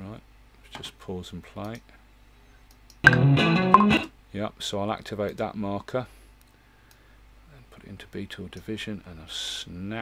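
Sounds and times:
flurry of guitar notes: 3.0 - 4.1.

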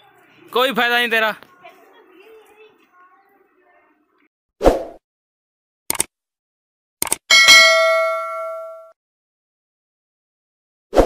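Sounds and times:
sharp clicks: 5.9 - 6.1, 7.0 - 7.2
notification bell chime: 7.3 - 9.0.

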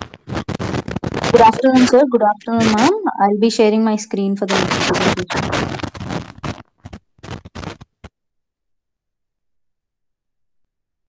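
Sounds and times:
scraping crackling microphone noise: 0.0 - 3.1, 4.4 - 8.1.

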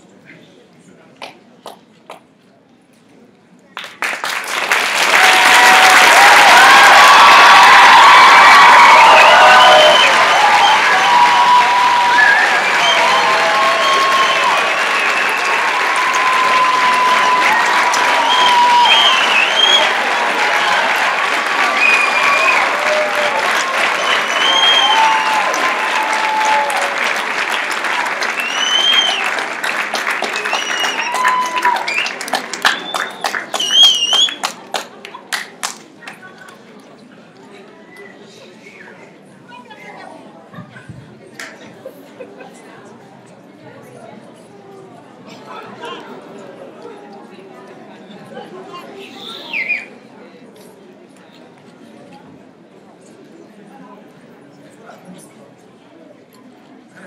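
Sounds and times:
audience applauding: 3.8 - 36.5.

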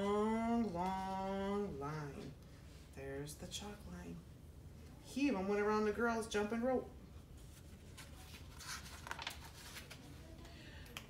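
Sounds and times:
paper page turning: 7.4 - 10.2.

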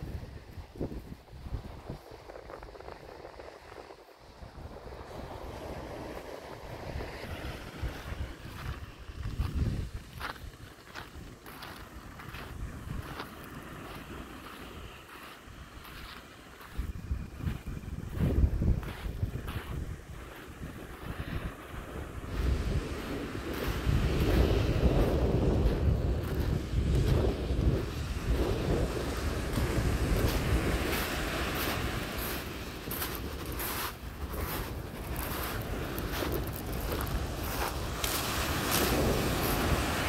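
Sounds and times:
wind buffeting microphone: 0.0 - 40.0
small waves on shingle: 4.6 - 40.0
footsteps crunching on pebbles: 7.8 - 21.2, 29.5 - 39.9.

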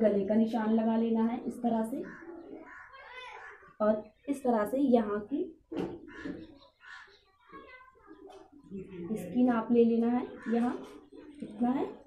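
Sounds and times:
faint bird calls: 2.0 - 4.3, 5.7 - 9.3, 10.2 - 12.0.

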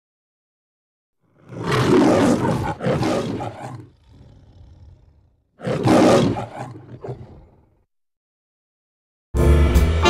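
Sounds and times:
lion roaring: 1.2 - 7.8.

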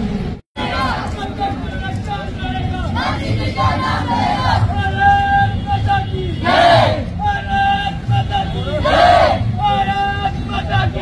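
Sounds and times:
crowd shouting in response: 0.6 - 11.0
person calling slogan: 4.6 - 11.0.

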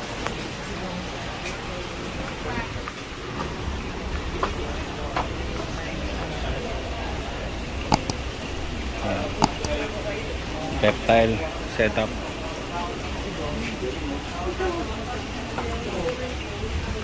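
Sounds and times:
sharp clicks: 7.9 - 9.8.

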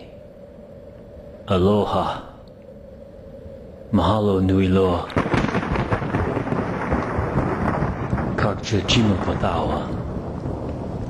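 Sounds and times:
heavy rain: 5.1 - 11.0
rumbling thunder: 5.1 - 11.0.

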